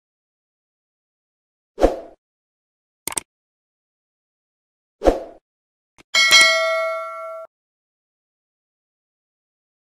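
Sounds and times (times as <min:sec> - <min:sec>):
bright bell ding: 0:06.2 - 0:07.5.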